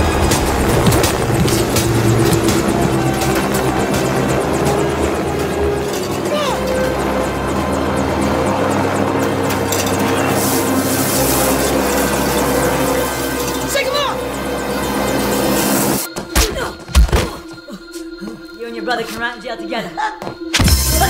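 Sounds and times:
helicopter rotor chopping: 0:00.0 - 0:16.1
action film music: 0:00.0 - 0:21.0.

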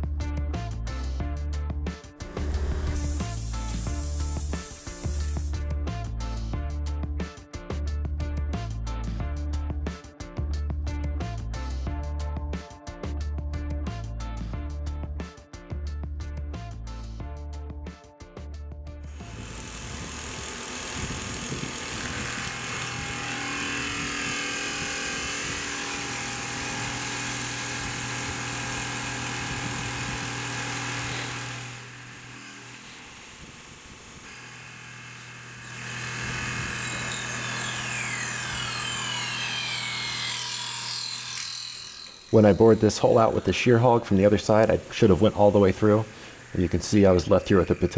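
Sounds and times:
hiss of metal cutting: 0:02.2 - 0:05.6, 0:29.0 - 0:39.0, 0:40.2 - 0:47.9
mill spindle humming: 0:19.2 - 0:43.6.

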